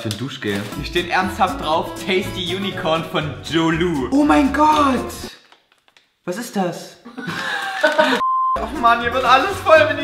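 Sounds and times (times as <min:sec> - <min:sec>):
censor bleep: 0:08.2 - 0:08.6.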